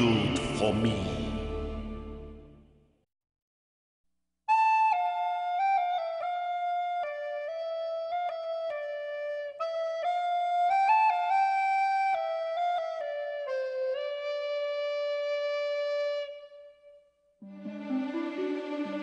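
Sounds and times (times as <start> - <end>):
solo flute slow melody: 4.5 - 19.0.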